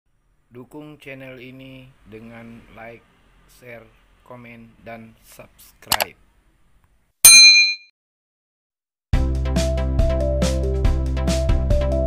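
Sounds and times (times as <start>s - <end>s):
bright bell ding: 7.3s - 7.9s.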